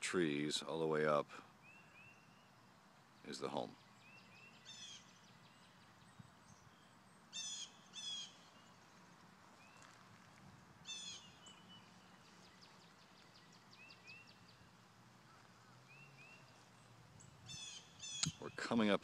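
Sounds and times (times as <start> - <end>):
faint chirps of small birds: 0.0 - 19.0
bird calling: 1.1 - 8.9, 10.8 - 18.7.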